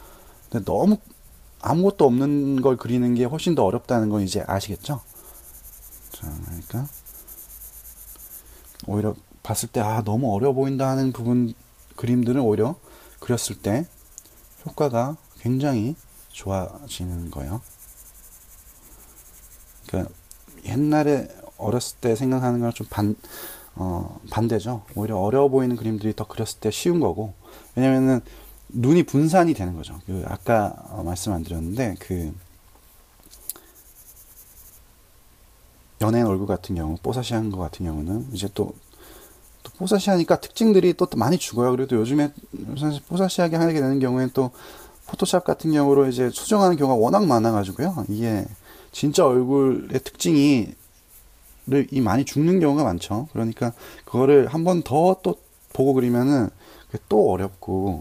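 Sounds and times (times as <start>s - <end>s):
pencil scratching on paper: 0.0s - 23.2s, 27.6s - 32.4s, 33.6s - 34.8s, 37.1s - 58.0s.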